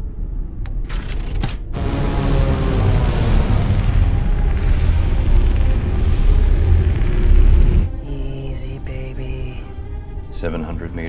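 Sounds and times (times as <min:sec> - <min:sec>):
dramatic film score: 0:00.4 - 0:11.0
dense heavy rumble: 0:01.7 - 0:11.0.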